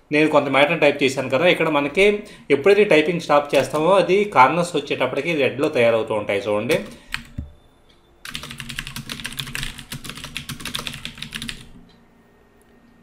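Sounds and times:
typing on computer keyboard: 0:06.7 - 0:07.5, 0:08.2 - 0:11.8.

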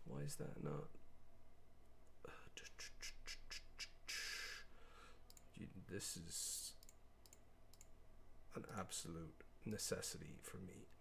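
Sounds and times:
short breathy hiss: 0:02.6 - 0:05.2
computer mouse clicks: 0:05.3 - 0:05.5, 0:06.8 - 0:07.9.

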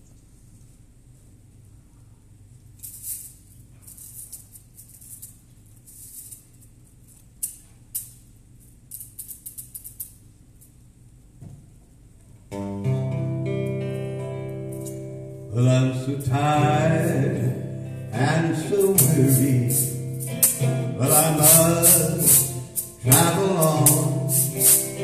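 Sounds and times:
percussion shaker rattling: 0:02.8 - 0:10.7, 0:18.5 - 0:25.0
acoustic guitar strumming: 0:12.5 - 0:25.0
gospel song: 0:15.5 - 0:25.0.

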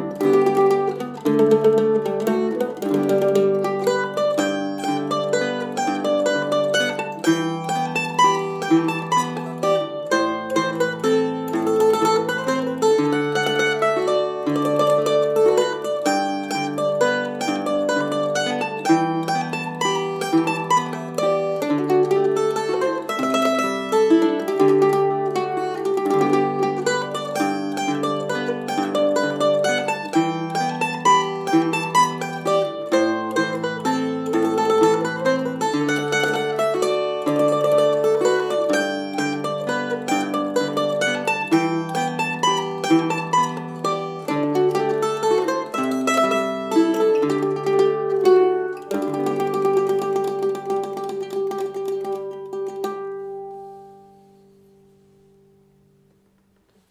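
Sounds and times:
tenor guitar chords: 0:00.0 - 0:56.6
mandolin playing waltz melody: 0:00.0 - 0:56.9.

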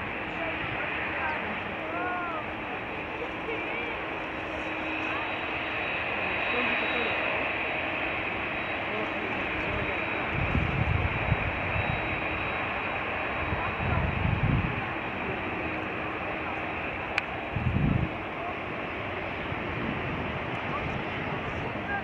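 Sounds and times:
jet engines running: 0:00.0 - 0:22.0
wind buffeting microphone: 0:07.3 - 0:22.0.

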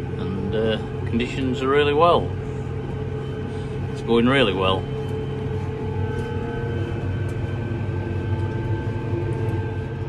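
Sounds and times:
tractor engine droning: 0:00.0 - 0:10.0.

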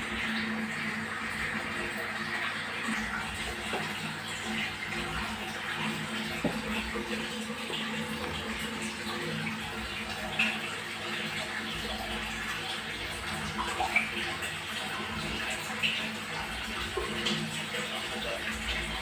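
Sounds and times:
water splashing in a fish tank: 0:00.0 - 0:19.0.

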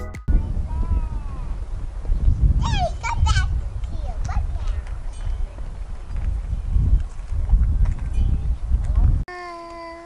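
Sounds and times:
wind buffeting microphone: 0:00.3 - 0:09.3.

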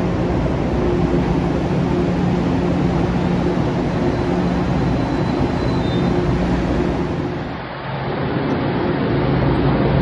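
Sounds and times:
train rumbling with hum: 0:00.0 - 0:10.0.

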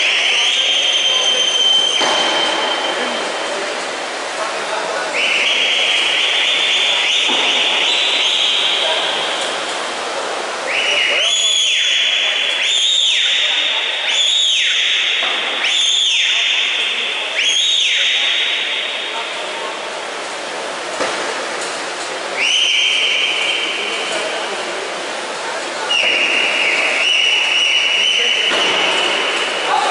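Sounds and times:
shrill whistles: 0:00.0 - 0:03.2, 0:05.1 - 0:09.1, 0:10.6 - 0:19.3, 0:22.4 - 0:24.0, 0:25.8 - 0:29.9
crowd noise: 0:00.0 - 0:29.9.

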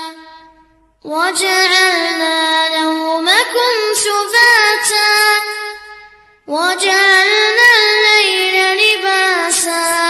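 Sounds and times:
child reciting melodic chant: 0:01.1 - 0:10.0.

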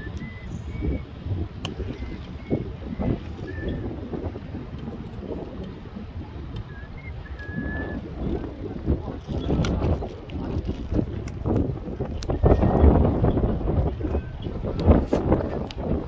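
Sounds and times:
faint high whistles: 0:00.0 - 0:01.2, 0:06.6 - 0:08.4
wind buffeting microphone: 0:00.0 - 0:16.0.

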